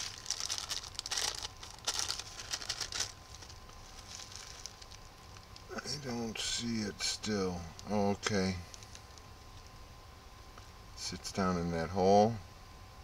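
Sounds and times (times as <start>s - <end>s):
plastic bag crinkling: 0.0s - 5.7s.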